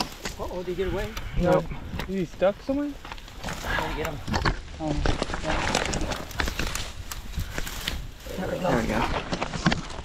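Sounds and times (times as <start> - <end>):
grass and brush rustling: 0.0 - 10.0.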